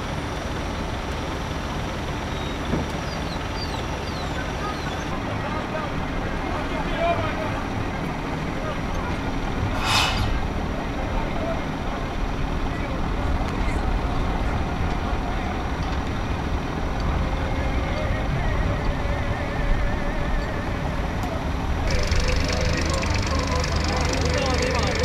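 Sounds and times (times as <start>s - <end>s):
diesel machinery rumbling: 0.0s - 25.0s
sharp hiss: 9.7s - 10.6s.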